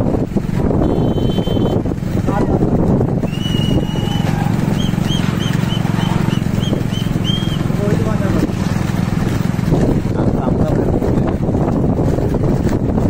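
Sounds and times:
motorcycle engine running: 0.0 - 13.0
high whistle: 0.8 - 1.8, 3.2 - 7.7
short whistle blasts: 0.8 - 1.8, 3.2 - 7.7.

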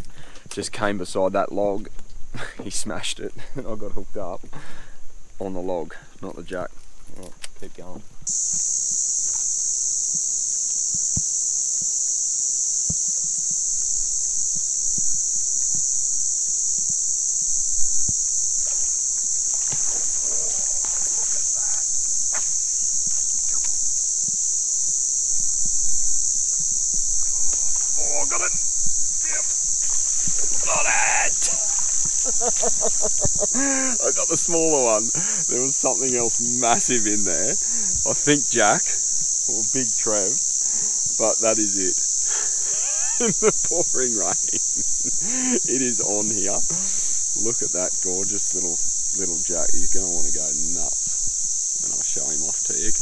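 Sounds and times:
high-pitched insect chorus: 0.0 - 53.0
man exclaiming: 27.9 - 29.5, 30.6 - 31.8.

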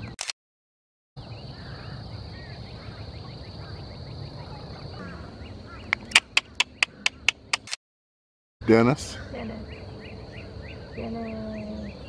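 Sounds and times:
small birds chirping: 1.2 - 7.7, 8.6 - 12.0
ibis short calls: 5.0 - 7.8.

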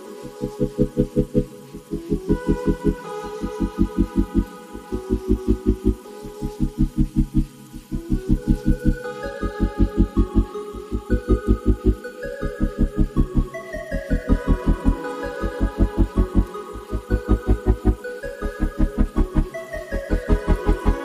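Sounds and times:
sustained higher tones: 0.0 - 21.0
pulsing low note: 0.3 - 21.0.

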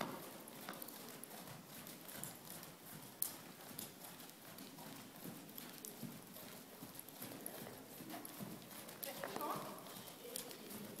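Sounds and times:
horse hoofbeats on sand: 0.0 - 11.0.

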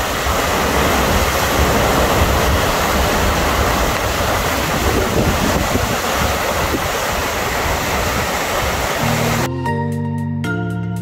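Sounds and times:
river rushing over its bed: 0.0 - 9.5.

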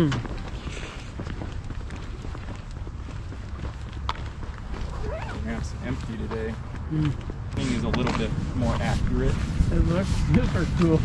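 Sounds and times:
footsteps on pavement: 0.0 - 11.0
steady low rumble: 0.0 - 11.0.

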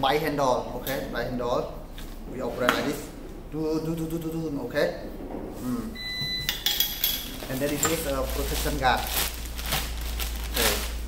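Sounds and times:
electronic beep: 6.0 - 6.6
plastic wrap crinkling: 7.2 - 11.0.

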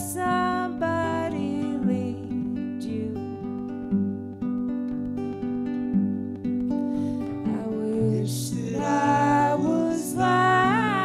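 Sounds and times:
acoustic guitars playing: 0.0 - 11.0.

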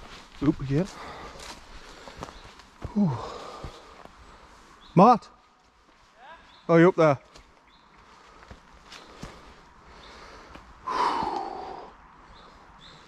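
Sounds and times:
footsteps on stony ground: 0.0 - 4.8, 5.4 - 10.8.

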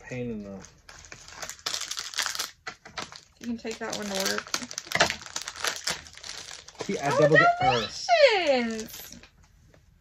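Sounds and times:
plastic wrappers crinkling: 0.5 - 9.3
person exclaiming: 6.9 - 8.8.

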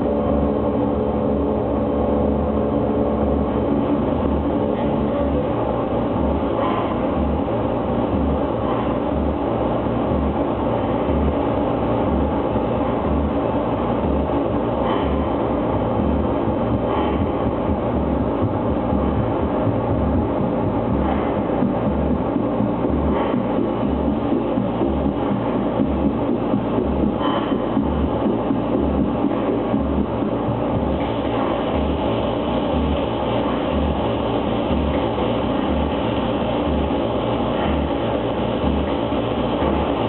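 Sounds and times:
distorted noise music: 0.0 - 40.0
low pulsing throb: 0.0 - 40.0.

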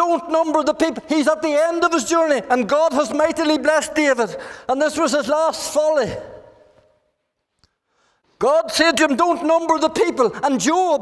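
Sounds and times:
man speaking: 0.0 - 6.6, 8.4 - 11.0.

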